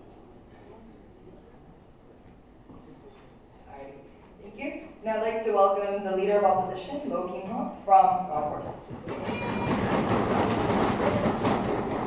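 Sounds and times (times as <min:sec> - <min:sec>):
audience applauding: 0:09.1 - 0:12.0.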